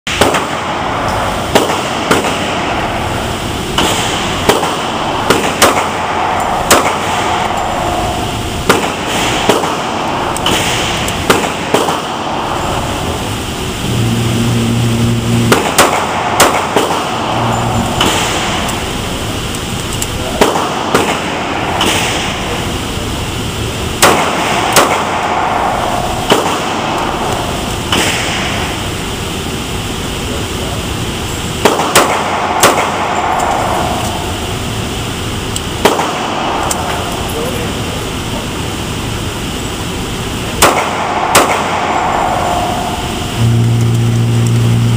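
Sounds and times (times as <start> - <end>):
pistol shots echoing indoors: 0.1 - 13.2, 15.3 - 19.3, 20.0 - 22.6, 23.9 - 28.8, 31.5 - 34.5, 35.6 - 37.2, 40.5 - 43.4
short low hum: 13.1 - 19.8, 42.5 - 44.9.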